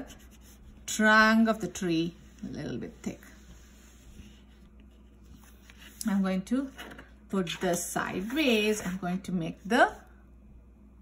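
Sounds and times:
crayon rubbing on paper: 0.0 - 0.9.

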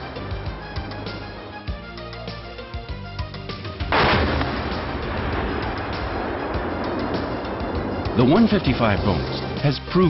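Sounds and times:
background music: 0.0 - 10.0
loud explosive bang: 3.9 - 9.6.

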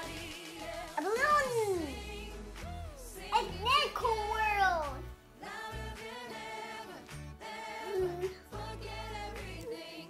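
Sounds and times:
music playing: 0.0 - 10.0.

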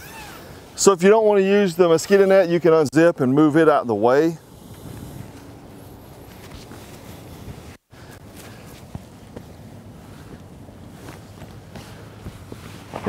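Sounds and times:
hammock fabric rustling: 0.0 - 0.8, 4.5 - 13.0
wind hiss: 3.9 - 13.0.

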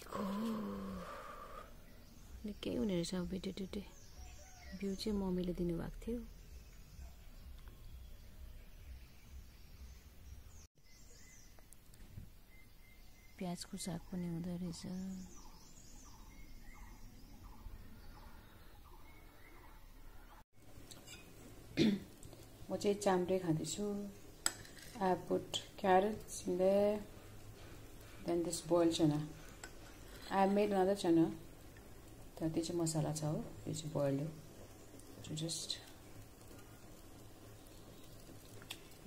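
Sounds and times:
woman talking: 2.4 - 3.9, 4.8 - 6.3, 13.4 - 15.3, 22.7 - 24.2, 25.0 - 27.1, 28.3 - 29.4.

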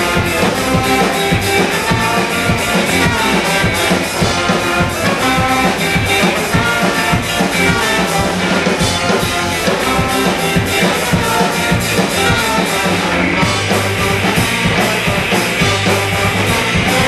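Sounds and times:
drum kit beat: 0.0 - 17.0
horn section: 0.0 - 17.0
ska band playing: 0.0 - 17.0.

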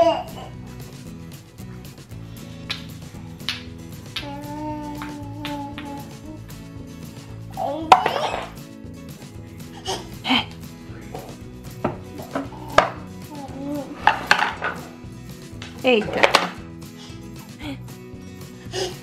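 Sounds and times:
soft background music: 0.0 - 19.0
wooden toys knocking on wood floor: 11.2 - 13.1, 14.0 - 14.9, 15.6 - 16.6.

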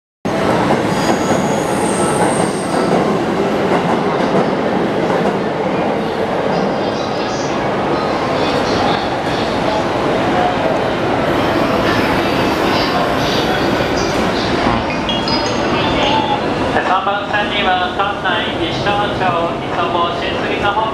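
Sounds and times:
railway platform train rumble: 0.3 - 20.9
electric train pulling away: 11.2 - 16.7.

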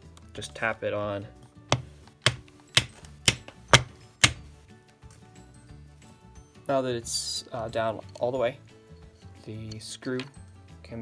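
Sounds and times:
sharp taps on plastic gear: 1.7 - 4.4.

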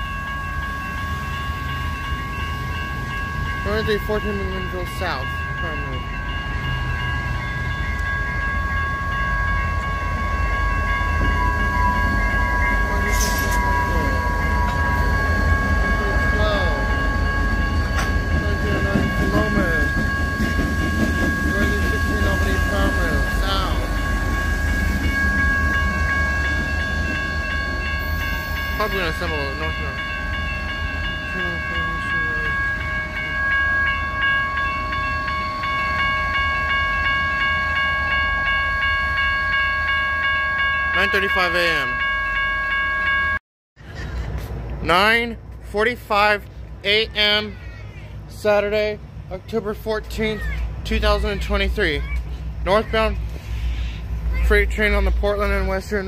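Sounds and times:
diesel locomotives rumbling: 0.0 - 43.2, 43.8 - 56.0
crossing bells ringing: 0.0 - 43.4, 44.8 - 56.0.

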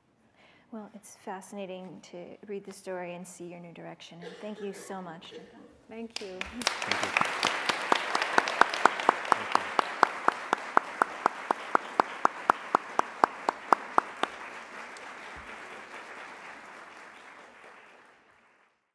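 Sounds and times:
person clapping loudly: 6.2 - 18.6
audience applauding: 6.2 - 18.9.

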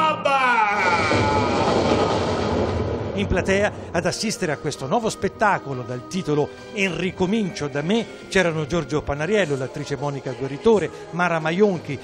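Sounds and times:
man shouting theatrically: 0.0 - 1.5
thunder and wind noise: 1.0 - 4.2.

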